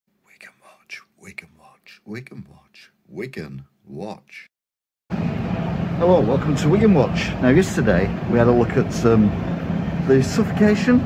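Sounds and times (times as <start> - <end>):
person whispering: 0.2 - 3.4.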